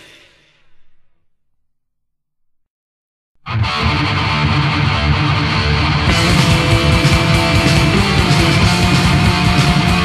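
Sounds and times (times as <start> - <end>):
metal guitars and drums chord ringing: 3.5 - 10.0.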